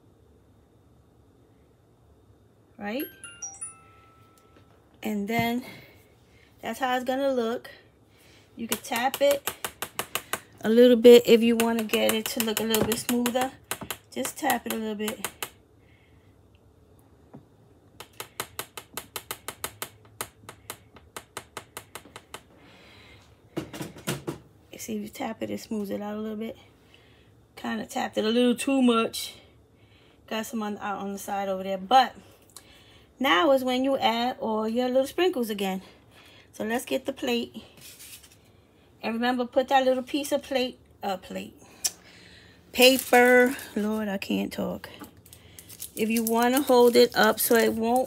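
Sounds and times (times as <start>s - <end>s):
bell-like chime notes: 3.0s - 4.8s.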